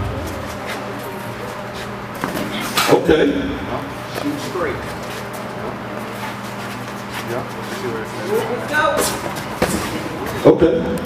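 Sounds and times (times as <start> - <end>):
hall noise: 0.0 - 11.0.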